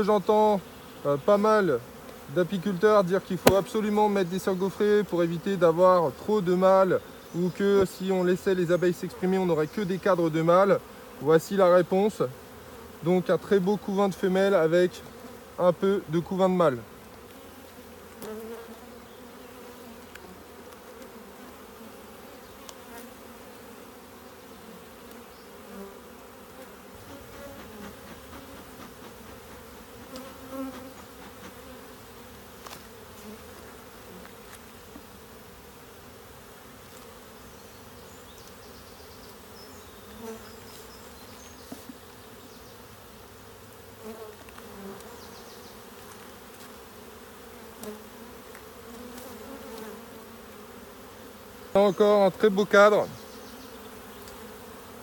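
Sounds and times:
honeybees buzzing: 0.0s - 55.0s.

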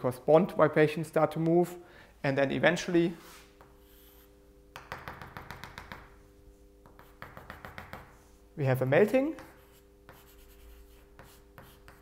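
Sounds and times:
chalk tapping on blackboard: 3.6s - 6.2s, 6.8s - 8.2s, 9.2s - 12.0s.

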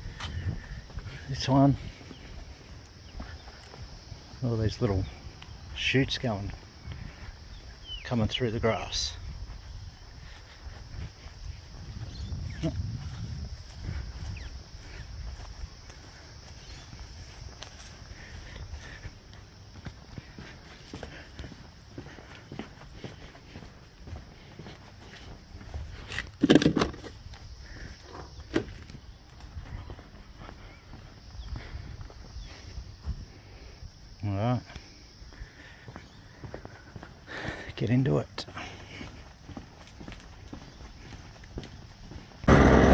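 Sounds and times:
footsteps on grass and pavement: 0.0s - 42.9s.

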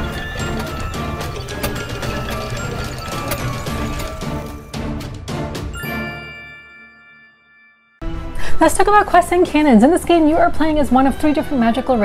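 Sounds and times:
mechanical gear and ratchet sounds: 0.0s - 4.6s.

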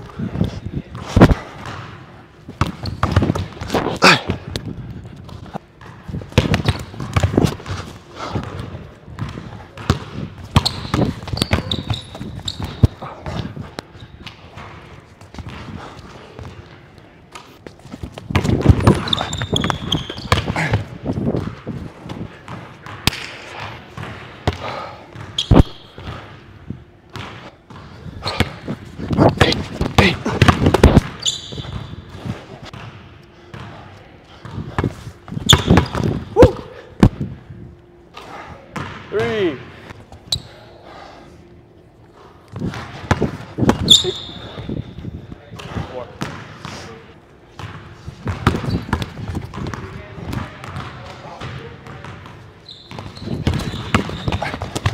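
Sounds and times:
sneaker squeaks: 0.9s - 3.9s, 5.4s - 16.8s, 17.6s - 26.5s, 27.2s - 33.8s, 34.4s - 36.6s, 40.2s - 40.8s, 42.6s - 45.1s, 47.6s - 49.9s, 50.6s - 54.9s.

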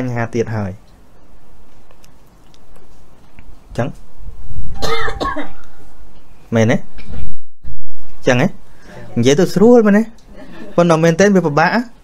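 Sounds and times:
man coughing and clearing throat: 4.8s - 5.6s.

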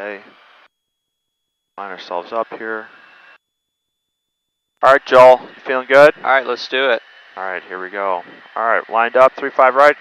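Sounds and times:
man speaking: 1.8s - 2.8s, 4.8s - 10.0s.

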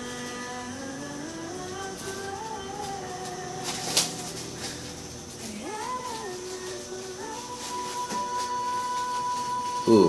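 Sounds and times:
woman singing sustained notes: 0.0s - 10.0s.

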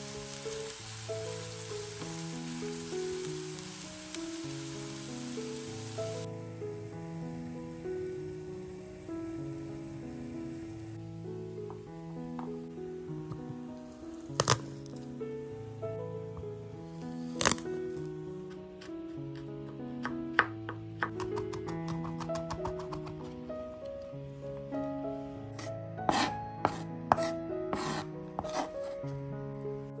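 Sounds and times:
gentle background music: 0.0s - 30.0s
knife crushing garlic on board: 17.4s - 17.6s, 18.5s - 24.0s, 26.1s - 28.7s
knife mincing on board: 21.0s - 24.0s, 25.6s - 29.0s.

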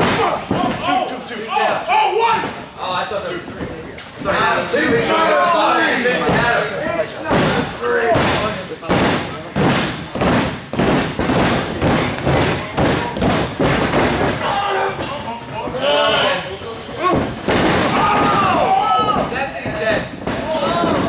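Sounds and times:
thuds on wrestling ring canvas: 7.2s - 14.4s, 17.0s - 21.0s.

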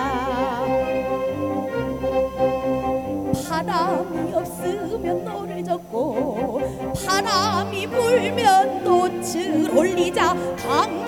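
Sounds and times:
orchestra playing held chords: 0.0s - 11.0s.

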